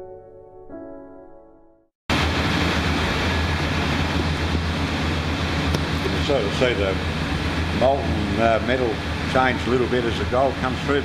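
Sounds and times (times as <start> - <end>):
even rushing noise: 2.1 - 10.8
machinery low hum: 2.1 - 11.0.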